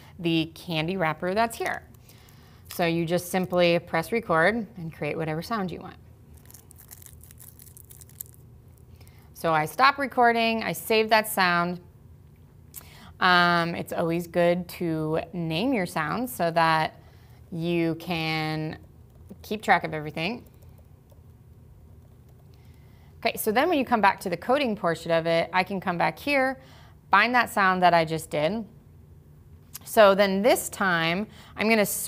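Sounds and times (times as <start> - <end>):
low room hum: 0.0 - 32.0
candy wrapper crinkling: 6.3 - 9.0
keyboard typing: 22.0 - 22.5.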